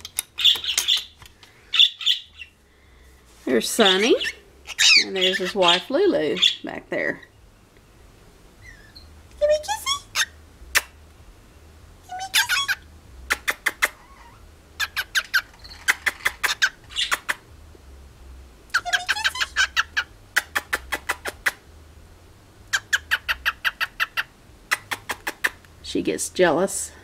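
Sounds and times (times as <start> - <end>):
cockatiel chirping: 0.4 - 2.5, 3.9 - 6.6, 8.6 - 9.1, 12.1 - 12.8, 13.4 - 17.3, 18.7 - 21.0, 22.7 - 24.9.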